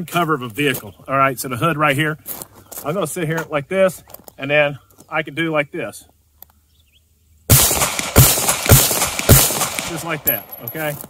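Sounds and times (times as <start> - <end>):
handgun shots: 7.5 - 10.5.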